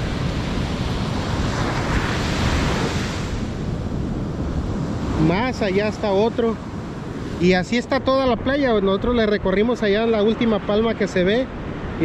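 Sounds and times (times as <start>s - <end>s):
ocean surf breaking on beach: 0.0s - 12.0s
wind on microphone: 0.0s - 12.0s.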